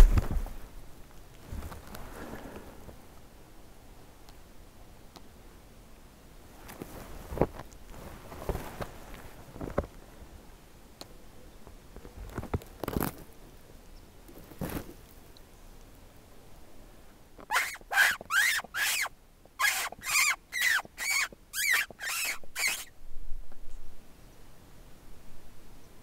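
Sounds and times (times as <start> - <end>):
soft rustles: 0.0 - 3.1, 6.5 - 10.0, 14.3 - 15.3
short sharp mouth squeaks: 17.5 - 22.9.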